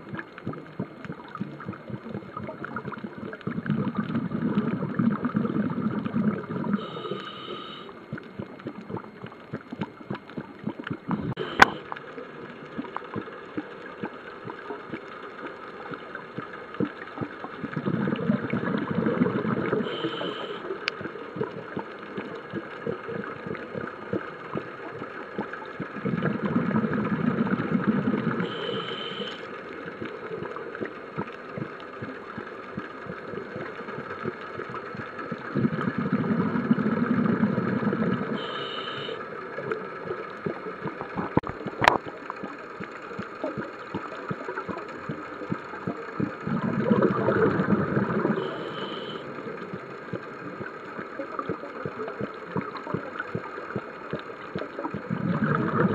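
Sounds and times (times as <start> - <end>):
exhaled bubbles rumbling: 0.0 - 55.9
faint crackle: 0.0 - 55.9
regulator inhale hiss: 6.8 - 7.9, 38.4 - 39.2, 48.5 - 49.2.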